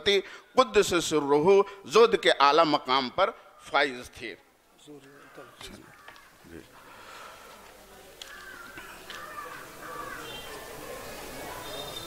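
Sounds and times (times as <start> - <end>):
bird calling: 8.2 - 12.0.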